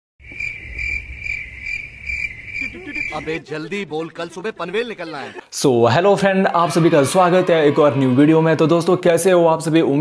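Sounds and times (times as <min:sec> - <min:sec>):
cricket chirping: 0:00.2 - 0:03.4.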